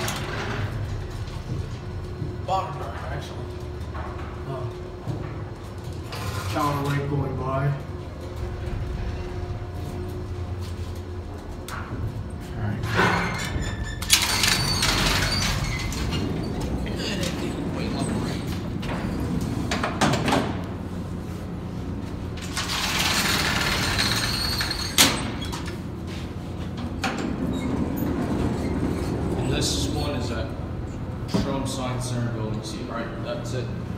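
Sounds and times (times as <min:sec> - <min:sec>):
elevator door sliding: 0:00.0 - 0:21.2, 0:22.2 - 0:32.5
low elevator hum: 0:00.0 - 0:33.9.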